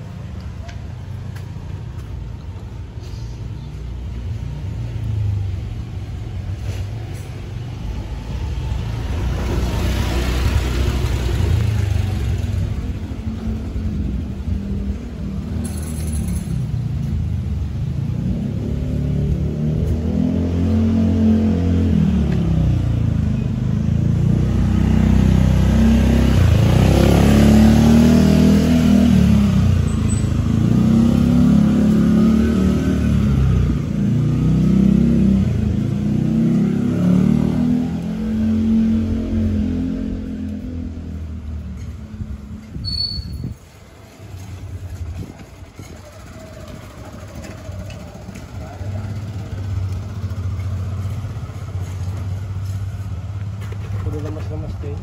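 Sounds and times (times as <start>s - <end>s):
scooter engine revving: 44.6s - 51.8s.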